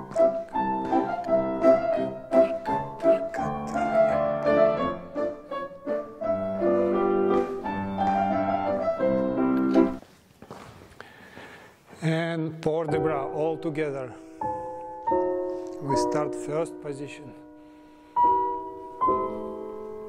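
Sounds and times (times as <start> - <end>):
solo piano music: 0.0 - 10.0, 12.8 - 20.0.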